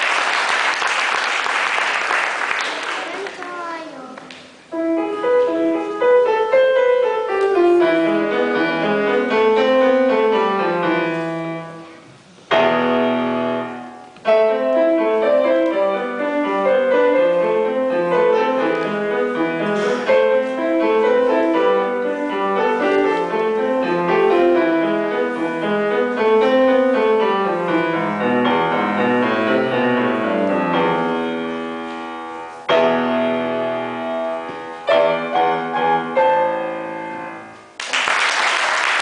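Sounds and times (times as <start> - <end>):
grand piano playing: 4.7 - 37.8.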